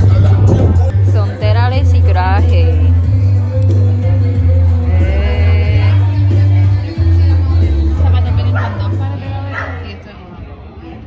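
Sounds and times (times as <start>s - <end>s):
background music: 0.0s - 10.2s
dog barking: 8.6s - 8.8s, 9.5s - 9.9s.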